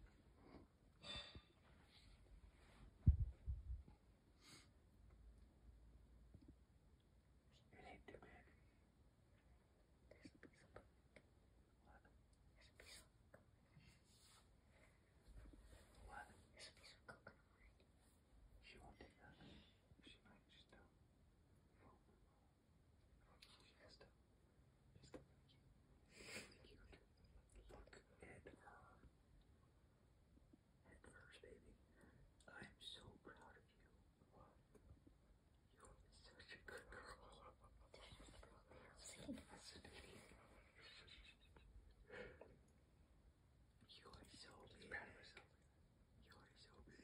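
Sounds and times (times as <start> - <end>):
faint whispering: 7.5 - 8.8, 10.0 - 21.0, 21.6 - 22.5, 23.2 - 24.2, 24.9 - 29.2, 30.8 - 42.7, 43.8 - 47.0.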